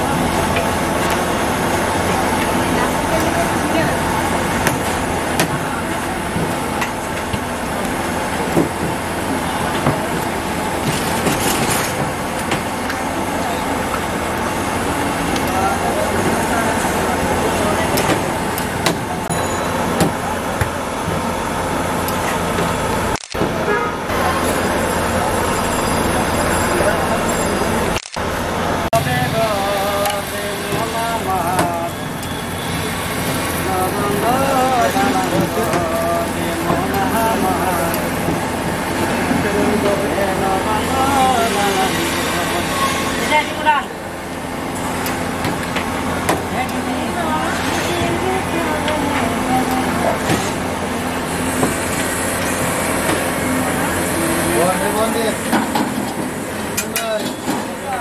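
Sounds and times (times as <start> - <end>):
hot oil frying in wok: 0.0 - 27.0, 27.9 - 57.9
indistinct voices: 0.0 - 58.0
street traffic: 0.0 - 58.0
scattered clicks: 23.1 - 23.4, 27.9 - 28.3.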